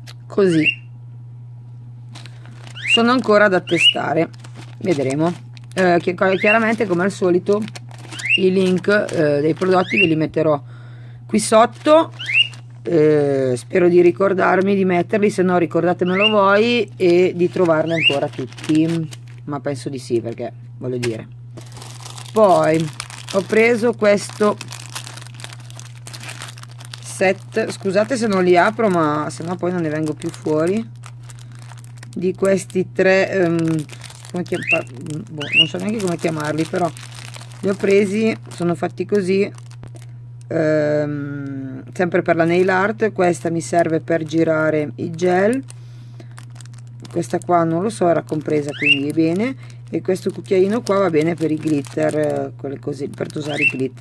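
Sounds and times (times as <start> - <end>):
steady low hum: 0.0 - 54.0
plastic bag crinkling: 2.1 - 10.4, 11.3 - 19.5, 21.0 - 40.5, 42.4 - 54.0
woman speaking: 2.8 - 7.7, 8.4 - 10.6, 11.3 - 12.2, 12.8 - 21.2, 22.3 - 24.7, 27.0 - 30.9, 32.1 - 37.0, 37.6 - 39.6, 40.5 - 45.7, 47.1 - 54.0.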